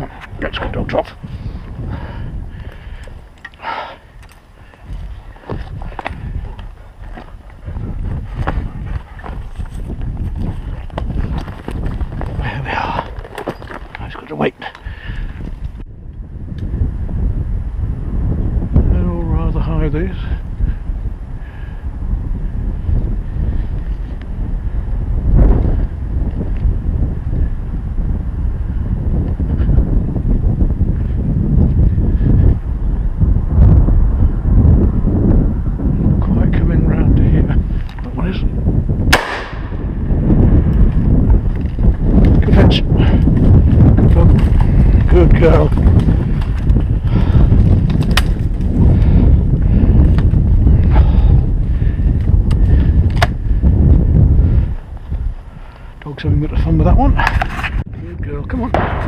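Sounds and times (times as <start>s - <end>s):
wind buffeting microphone: 0.0s - 59.0s
shotgun shot: 39.1s - 39.8s, 58.8s - 59.0s.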